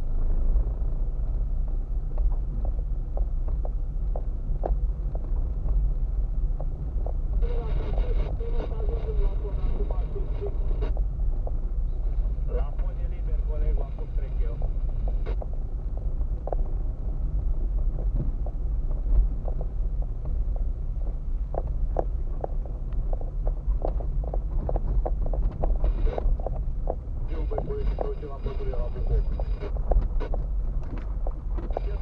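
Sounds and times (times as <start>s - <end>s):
car engine and tyre rumble: 0.0s - 32.0s.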